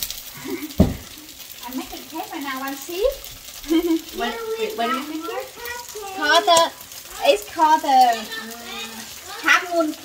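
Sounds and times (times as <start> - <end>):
batter sizzling in a pan: 0.0 - 10.0
voices talking: 0.4 - 10.0.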